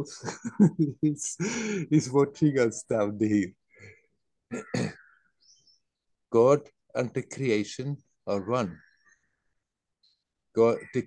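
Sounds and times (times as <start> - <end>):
man chuckling: 0.0 - 1.8.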